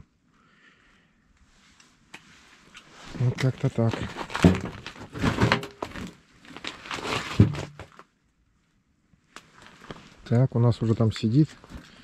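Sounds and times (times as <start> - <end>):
rustling handling noise: 1.5 - 8.1, 9.4 - 10.3.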